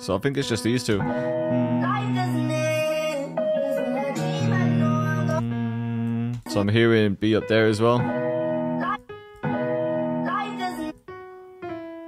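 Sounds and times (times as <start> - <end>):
piano note and chord: 1.0 - 6.6, 8.0 - 12.0.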